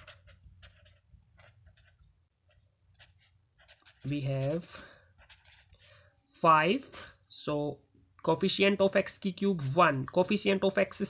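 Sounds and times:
pen writing on paper: 0.0s - 5.7s.

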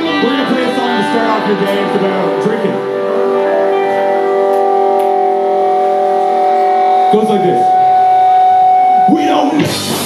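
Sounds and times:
electric guitar sustained tone: 0.0s - 10.0s.

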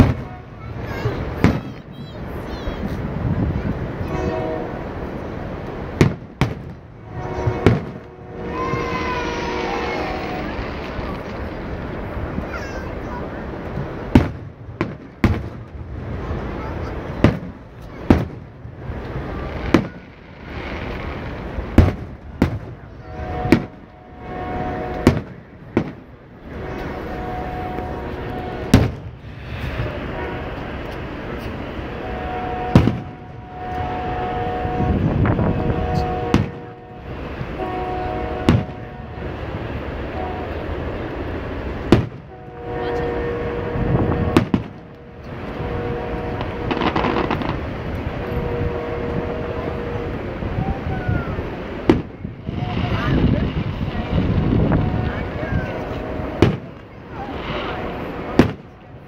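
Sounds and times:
fireworks booming: 0.0s - 3.6s, 4.2s - 12.4s, 13.6s - 40.8s, 41.4s - 50.2s, 50.9s - 59.0s.

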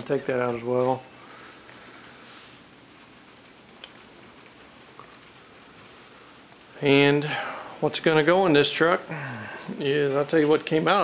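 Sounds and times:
faint steady hiss: 0.0s - 11.0s
small clicks: 3.7s - 5.2s.

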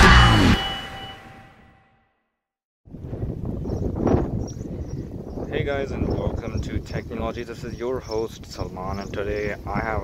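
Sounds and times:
wind rumbling on microphone: 2.9s - 10.0s.

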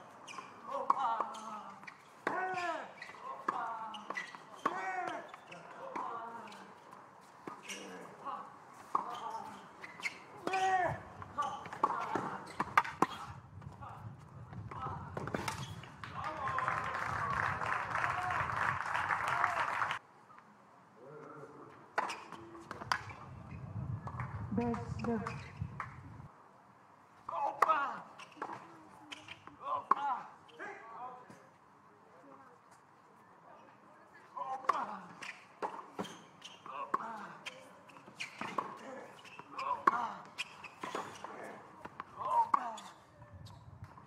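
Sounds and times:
tennis ball strokes and bounces: 8.8s - 13.7s, 21.9s - 23.2s, 34.6s - 42.9s
voices in background: 27.2s - 43.7s.

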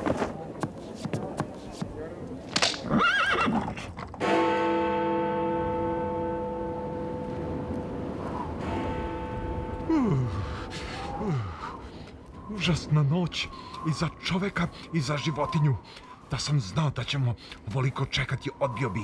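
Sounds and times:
horse whinny: 2.8s - 3.9s
sustained music chord: 4.2s - 11.0s.

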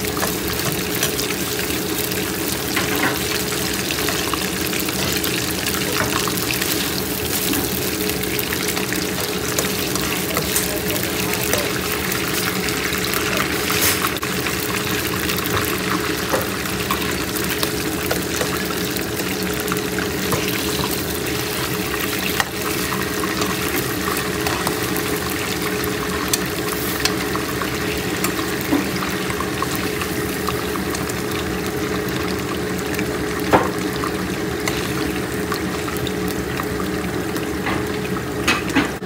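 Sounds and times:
beef sizzling in a wok: 0.0s - 39.0s.

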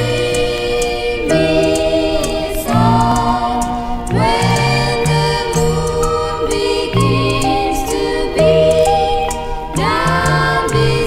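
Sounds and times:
stepping bass line: 2.7s - 7.7s.

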